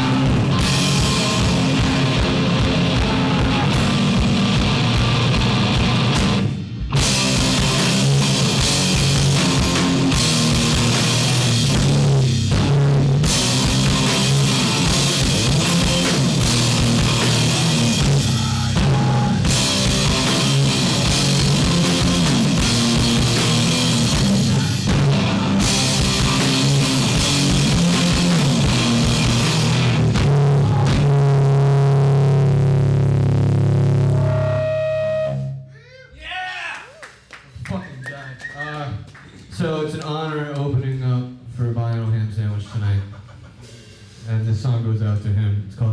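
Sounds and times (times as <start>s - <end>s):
drum kit: 0.0s - 35.6s, 42.6s - 45.4s
electric guitars: 0.0s - 35.6s.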